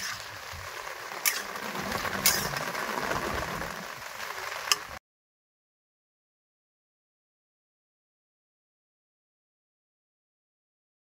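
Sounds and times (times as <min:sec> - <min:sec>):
food sizzling: 0:00.0 - 0:05.0
spatula scraping a pan: 0:01.1 - 0:03.9.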